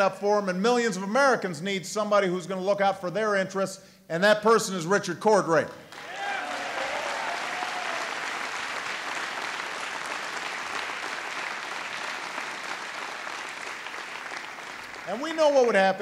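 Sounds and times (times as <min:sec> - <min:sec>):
crowd applauding: 0:05.9 - 0:16.0.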